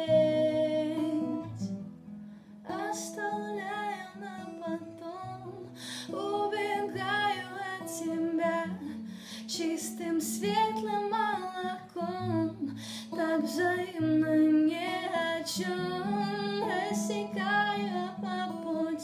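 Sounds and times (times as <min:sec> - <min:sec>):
woman singing: 0:00.0 - 0:01.7, 0:02.6 - 0:19.0
acoustic guitar: 0:00.0 - 0:19.0.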